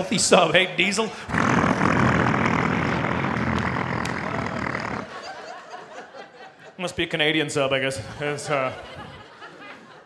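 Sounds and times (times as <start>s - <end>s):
man imitating engine rumble: 1.3s - 5.2s.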